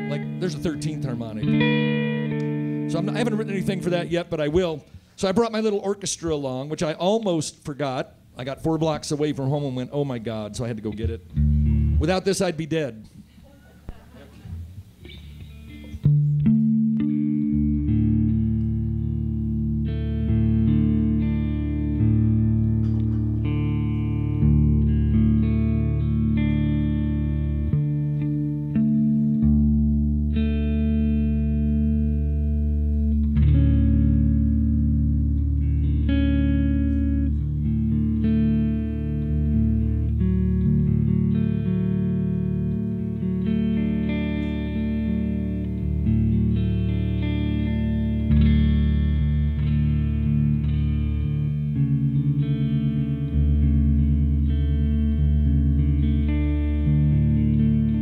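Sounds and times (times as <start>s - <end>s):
sustained low bass tones: 0.0s - 4.8s, 10.6s - 12.6s, 14.7s - 58.0s
electric guitar playing slow piece: 0.0s - 5.2s, 10.6s - 12.6s, 14.5s - 58.0s.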